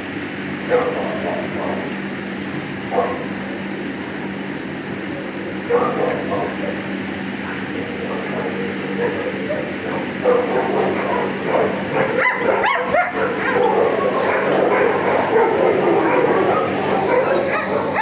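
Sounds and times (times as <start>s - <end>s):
steady low hum: 0.0s - 18.0s
dogs barking and yipping: 0.6s - 1.9s, 2.9s - 3.4s, 5.6s - 18.0s.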